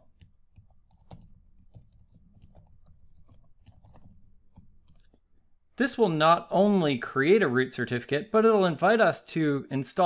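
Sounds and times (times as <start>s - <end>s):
faint keyboard typing: 0.0s - 5.2s.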